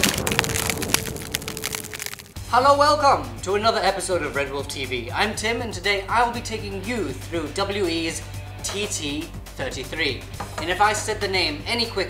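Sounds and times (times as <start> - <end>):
cracking and falling debris: 0.0 - 2.4.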